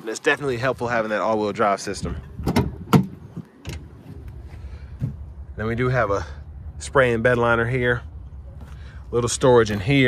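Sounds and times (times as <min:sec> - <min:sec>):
faint low rumble: 0:01.8 - 0:10.0.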